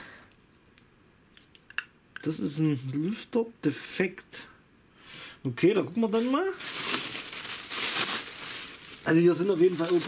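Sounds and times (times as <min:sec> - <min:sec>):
bubble wrap crinkling: 0:05.9 - 0:10.0.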